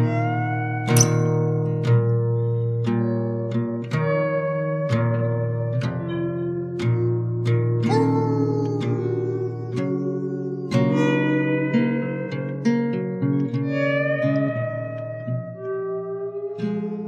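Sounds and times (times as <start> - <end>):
plucked guitar notes: 0.0 - 17.0.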